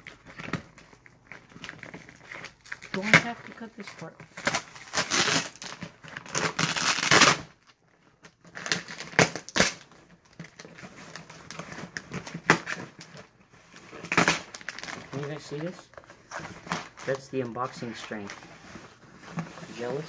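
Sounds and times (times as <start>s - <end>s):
packing tape tearing off cardboard: 0.0s - 20.0s
plastic pouch crinkling: 0.0s - 20.0s.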